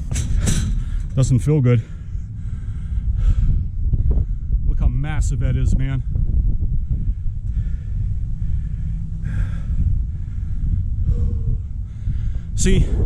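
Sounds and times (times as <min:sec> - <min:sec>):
wind buffeting microphone: 0:00.0 - 0:13.0
person breathing: 0:01.8 - 0:04.6, 0:06.8 - 0:13.0.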